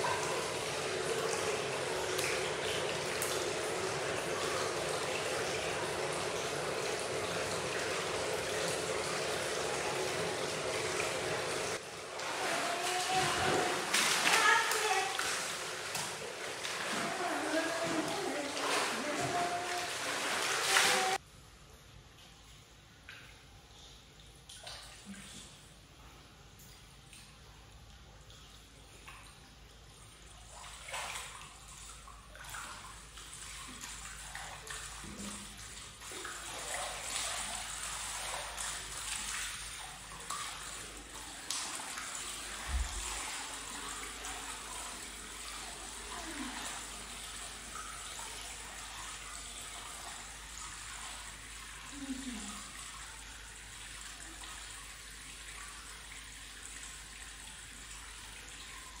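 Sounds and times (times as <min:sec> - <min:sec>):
bath water sloshing and splashing: 0:00.0 - 0:21.2, 0:26.6 - 0:59.0
water lapping and running: 0:00.0 - 0:21.2, 0:22.0 - 0:59.0.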